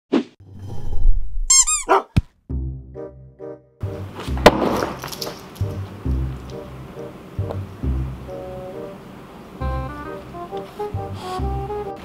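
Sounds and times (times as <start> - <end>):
high-pitched squeaks: 1.5 - 2.0.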